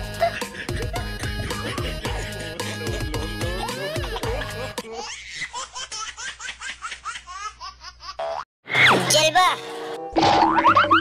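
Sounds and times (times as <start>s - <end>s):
background music: 0.0s - 4.8s.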